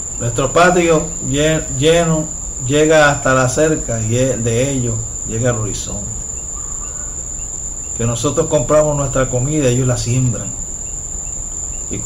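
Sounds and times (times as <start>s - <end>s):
steady high-pitched tone: 0.0s - 10.9s
low background hum: 0.0s - 12.0s.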